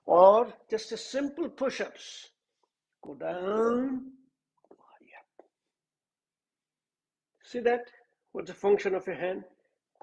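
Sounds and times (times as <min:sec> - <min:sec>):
man speaking: 0:03.0 - 0:04.3
person whispering: 0:04.6 - 0:05.7.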